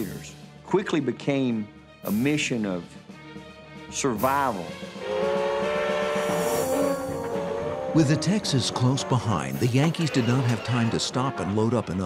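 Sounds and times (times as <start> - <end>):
steam locomotive whistle: 5.0 - 11.0.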